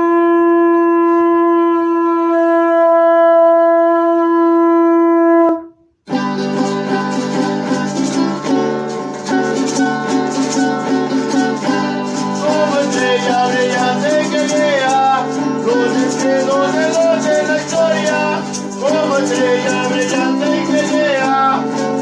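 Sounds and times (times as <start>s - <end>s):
conch shell trumpet blast: 0.0s - 5.9s, 13.0s - 21.6s
strummed string instruments: 6.0s - 22.0s.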